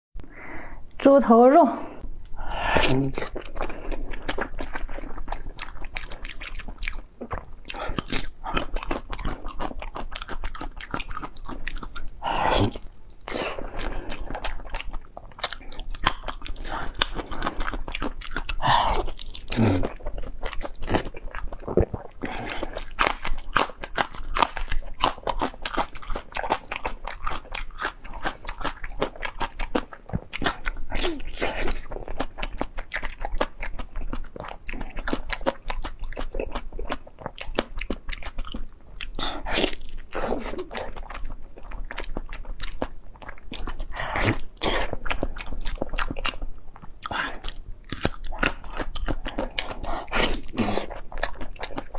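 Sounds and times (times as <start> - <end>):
wet chewing and biting: 2.1 - 51.9.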